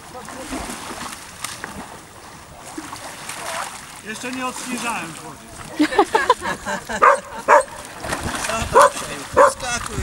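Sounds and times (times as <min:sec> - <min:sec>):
dog barking: 0:07.0 - 0:07.8, 0:08.7 - 0:09.6.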